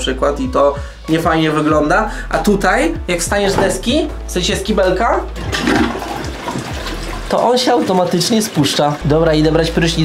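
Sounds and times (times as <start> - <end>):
toilet flushing: 5.3 - 10.0.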